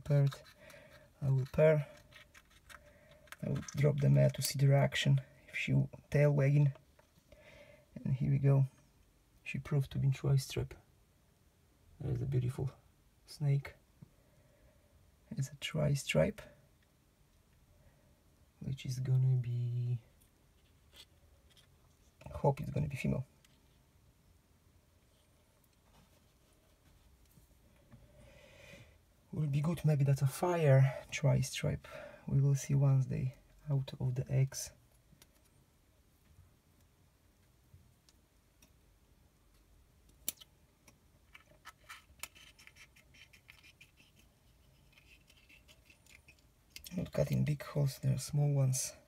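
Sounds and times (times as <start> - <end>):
faint scratching on egg shell: 0.2 - 3.9, 41.3 - 47.2.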